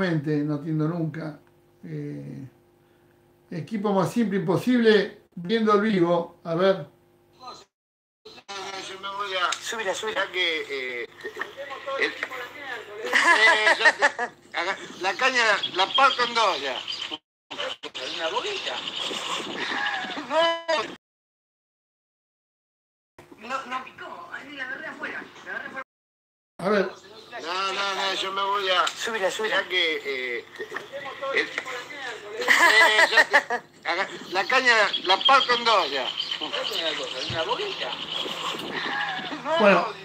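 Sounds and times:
outdoor background hiss: 0:08.3 - 0:20.3, 0:26.6 - 0:40.0
voices: 0:08.3 - 0:20.9, 0:26.6 - 0:40.0.

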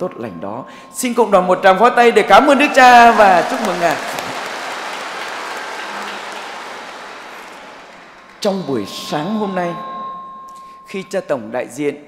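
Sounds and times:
congregation applauding: 0:02.4 - 0:08.8.

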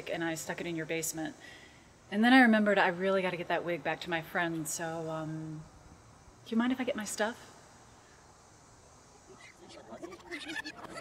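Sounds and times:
person laughing quietly: 0:09.4 - 0:11.0.

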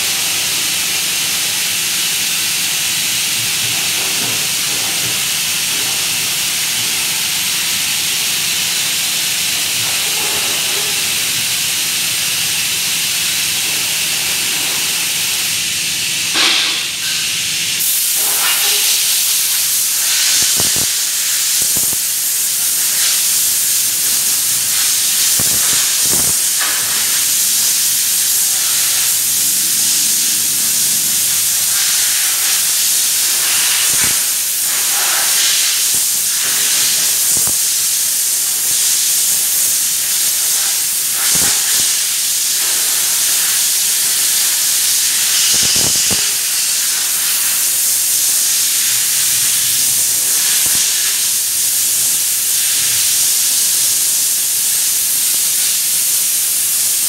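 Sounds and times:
spray gun hissing: 0:00.0 - 0:57.0.

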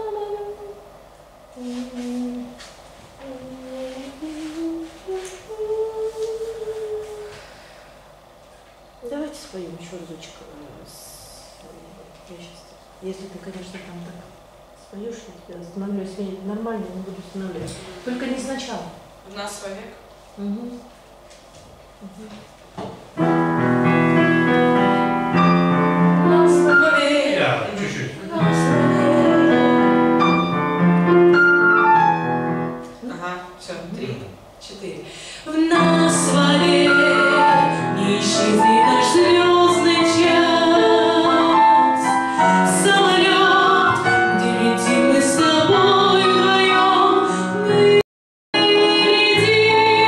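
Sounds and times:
digital piano chords: 0:23.2 - 0:33.0, 0:35.7 - 0:48.0.

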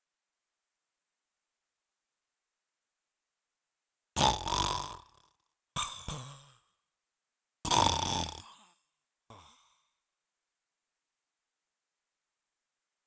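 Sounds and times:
man making rough throat sounds: 0:04.2 - 0:06.7, 0:07.7 - 0:09.8.

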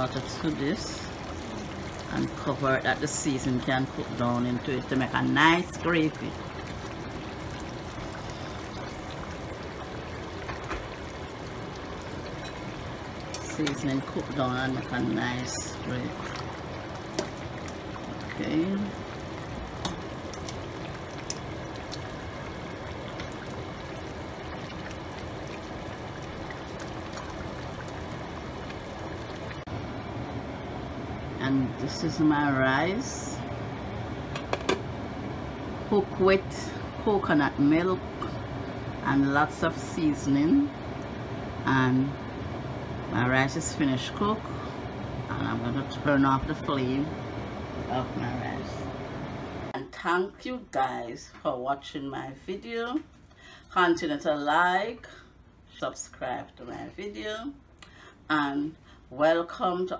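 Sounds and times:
water pouring and splashing: 0:00.0 - 0:29.7.

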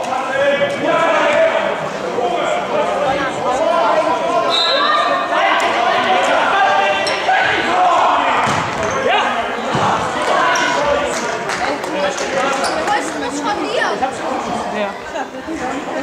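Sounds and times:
voices calling and chattering: 0:00.0 - 0:16.0.

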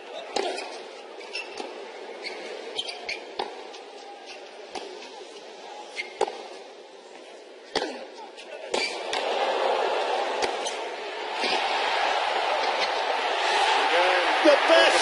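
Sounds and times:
crowd cheering: 0:08.8 - 0:15.0.

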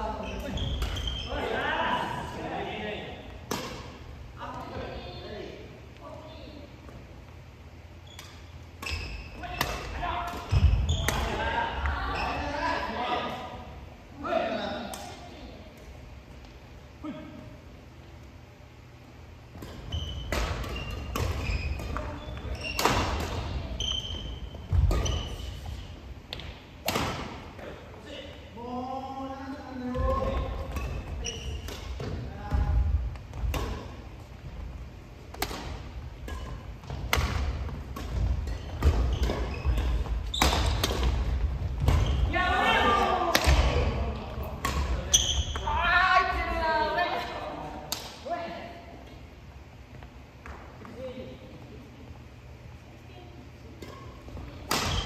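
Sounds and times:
rackets striking shuttlecocks: 0:35.3 - 0:42.0.

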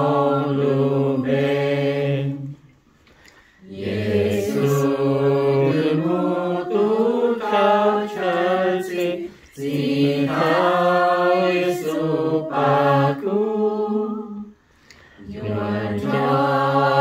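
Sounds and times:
group singing a hymn: 0:00.0 - 0:17.0.

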